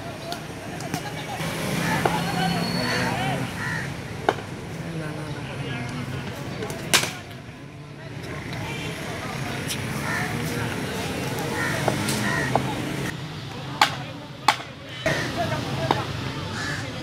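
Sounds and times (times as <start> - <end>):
voices calling: 0.0 - 17.0
ball cracking on bat: 6.9 - 7.3, 13.8 - 14.8.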